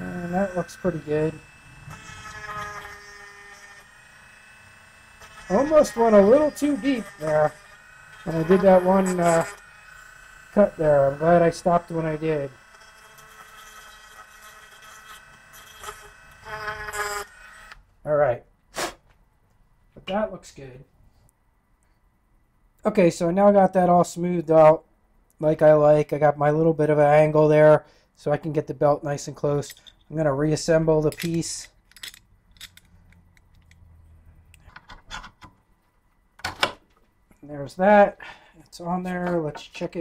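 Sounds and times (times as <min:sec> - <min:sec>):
metal grinding on sander belt: 0:00.0 - 0:17.7
belt sander whine: 0:00.0 - 0:17.8
metal parts clicking: 0:29.6 - 0:30.1, 0:31.0 - 0:33.8.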